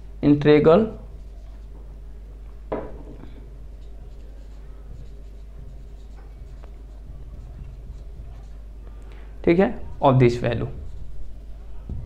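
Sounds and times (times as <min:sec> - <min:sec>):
steady low hum: 0:00.0 - 0:12.0
marker writing on whiteboard: 0:01.0 - 0:02.1, 0:02.8 - 0:08.8, 0:09.5 - 0:12.0.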